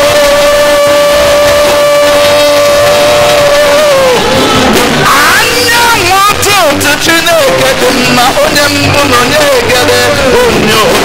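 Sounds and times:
man singing long high note: 0:00.0 - 0:04.7.

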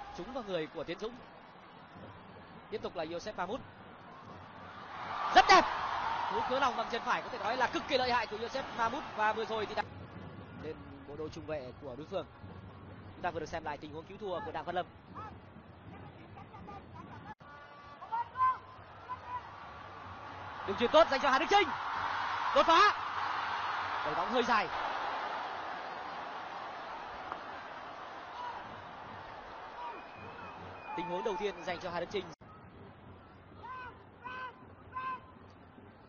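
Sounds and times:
stadium crowd noise: 0:00.0 - 0:11.2, 0:12.6 - 0:36.0.

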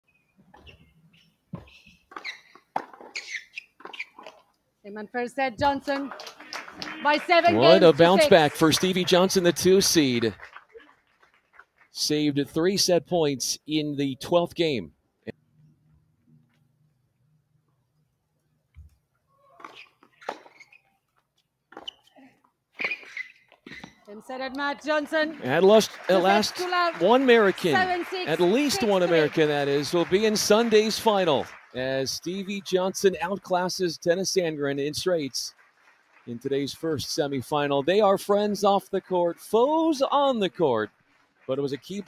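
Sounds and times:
shoe soles squeaking on court: 0:00.1 - 0:04.5, 0:18.8 - 0:24.2.

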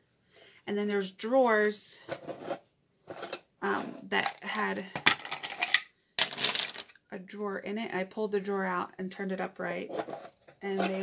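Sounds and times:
markers and pens clattering: 0:04.1 - 0:07.0, 0:09.8 - 0:11.0.

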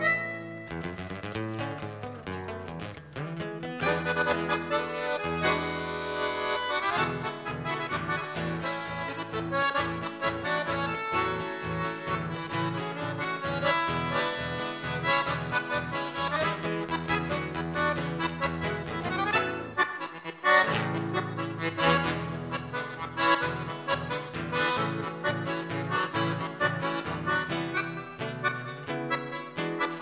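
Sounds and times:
accordion playing: 0:00.0 - 0:01.4, 0:03.8 - 0:30.0
acoustic guitar: 0:00.0 - 0:30.0.

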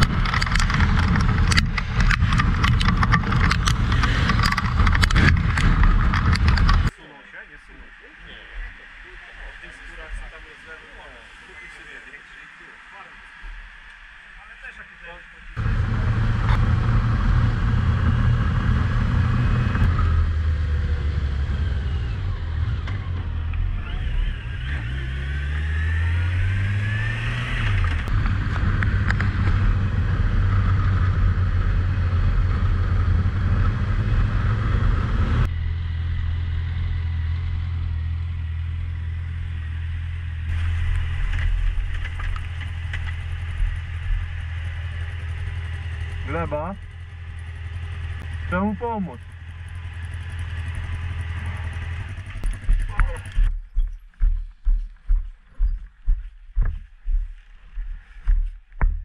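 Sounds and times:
motorcycle engine running: 0:00.0 - 0:06.9, 0:15.6 - 0:57.2.

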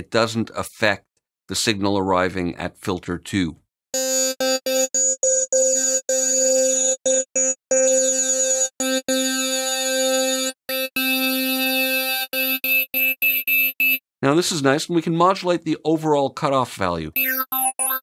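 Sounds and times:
synth playing repeated note: 0:04.0 - 0:14.0, 0:17.2 - 0:18.0.

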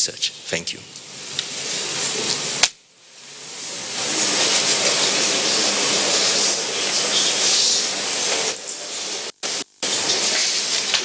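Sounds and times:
static hiss: 0:00.0 - 0:11.0.

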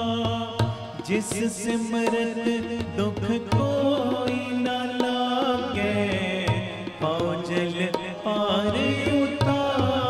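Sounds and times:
tabla strokes: 0:00.0 - 0:10.0.

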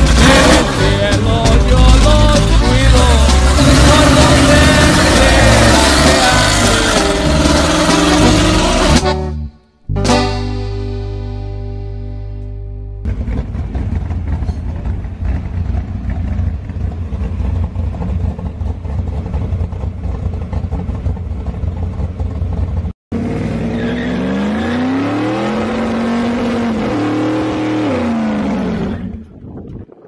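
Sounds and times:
truck engine rumbling and revving: 0:00.0 - 0:30.0.

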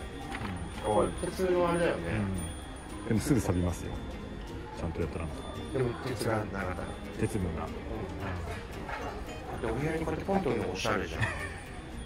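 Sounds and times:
indistinct talking voices: 0:00.0 - 0:12.0.

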